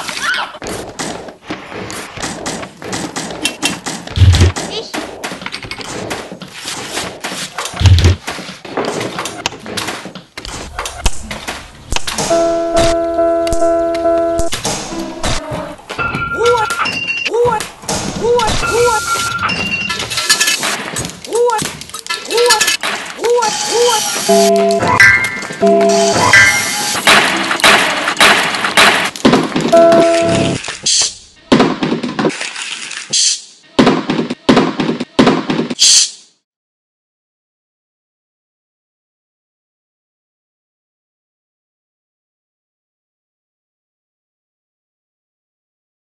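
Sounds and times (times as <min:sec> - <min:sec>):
beat of everyday noises: 0:00.1 - 0:32.4
short pitched tone: 0:24.3 - 0:27.0, 0:29.8 - 0:30.6.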